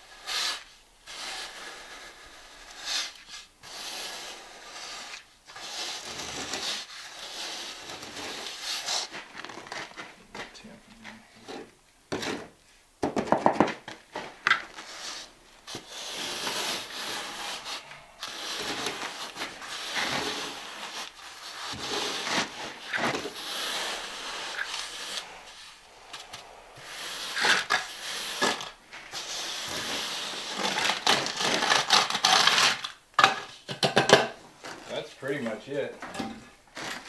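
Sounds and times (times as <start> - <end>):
wooden float scraping mortar: 0.2 - 10.6, 14.1 - 32.8.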